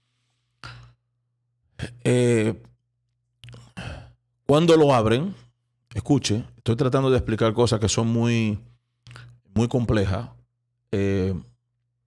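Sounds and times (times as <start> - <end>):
man breathing in: 3.5 - 4.2.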